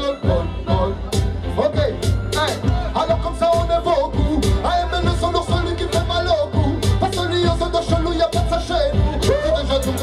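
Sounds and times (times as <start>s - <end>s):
person singing through microphone: 0.0s - 10.0s
reggae bass line and drums: 0.0s - 10.0s.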